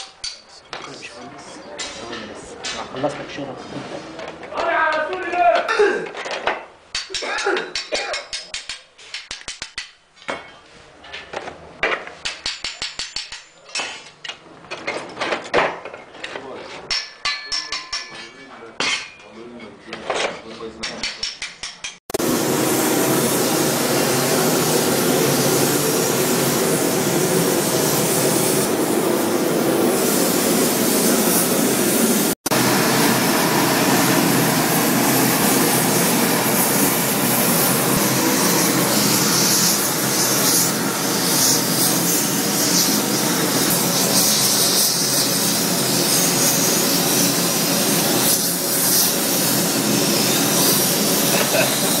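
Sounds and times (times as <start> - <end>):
gas torch flame hissing: 22.2 - 52.0.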